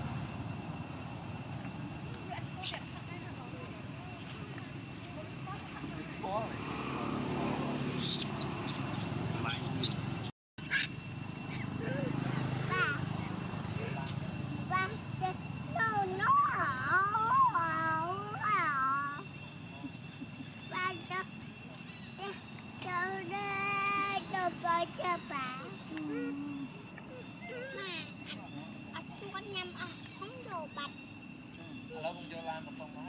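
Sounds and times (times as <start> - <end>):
infant macaque cooing: 7.9 - 10.0, 10.6 - 13.0
short high squeaks: 7.9 - 11.6
faint steady high tone: 11.5 - 33.0.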